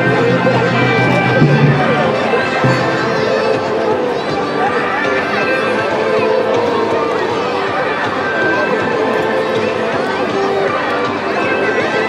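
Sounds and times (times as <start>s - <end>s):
children chattering and calling: 0.0s - 12.0s.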